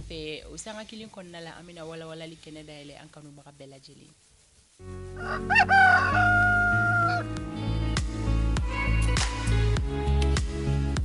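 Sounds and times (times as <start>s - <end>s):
music bed with bass: 4.8s - 11.0s
rooster crowing: 5.2s - 7.4s.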